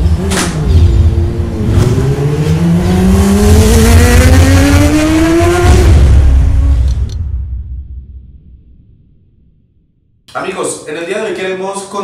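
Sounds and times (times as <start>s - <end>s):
engine revving rising in pitch: 0.0s - 7.1s.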